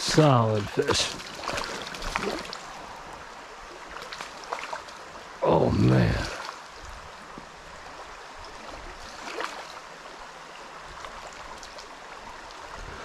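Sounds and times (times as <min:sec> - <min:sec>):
river rushing over stones: 0:00.0 - 0:13.0
faint splash: 0:00.2 - 0:02.8, 0:03.7 - 0:05.0, 0:05.9 - 0:06.6, 0:07.9 - 0:10.2.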